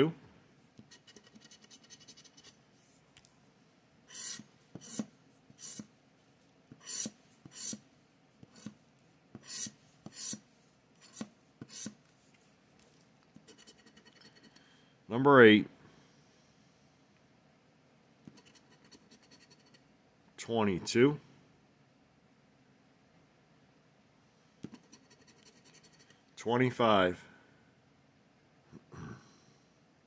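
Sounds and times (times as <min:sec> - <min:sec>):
scratcher scraping lottery ticket: 0:00.9 - 0:02.6, 0:04.1 - 0:05.9.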